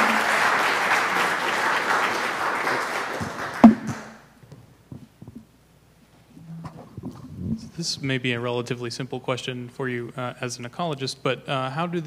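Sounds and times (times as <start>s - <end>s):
soft knocks: 3.6s - 4.1s.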